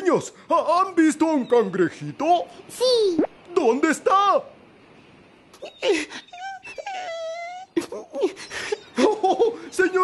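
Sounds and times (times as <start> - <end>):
high cartoon voice wailing: 5.6 - 8.2.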